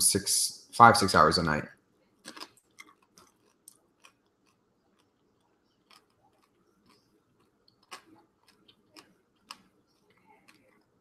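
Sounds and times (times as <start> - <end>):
person chewing crunchy food: 2.2 - 11.0.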